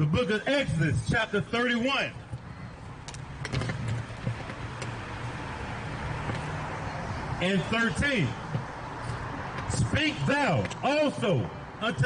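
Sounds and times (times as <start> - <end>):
traffic engine hum and road noise: 0.0 - 12.0.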